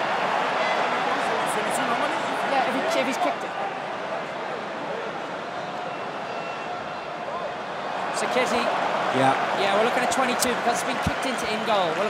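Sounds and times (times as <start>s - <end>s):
stadium crowd murmur: 0.0s - 12.0s.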